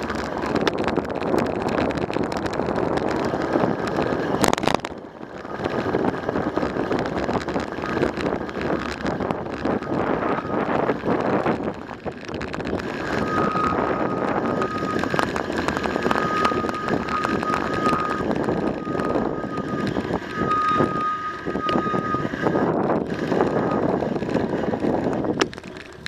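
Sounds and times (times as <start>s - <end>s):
bicycle riding over gravel: 0.0s - 26.0s
bike rattling over bumps: 0.0s - 26.0s
steady high whine: 0.0s - 26.0s
wind buffeting microphone: 0.0s - 26.0s.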